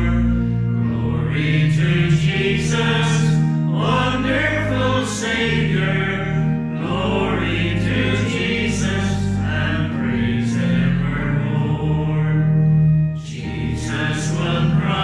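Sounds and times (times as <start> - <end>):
group singing a hymn: 0.0 - 12.5, 13.2 - 15.0
steady low accompaniment: 0.0 - 15.0.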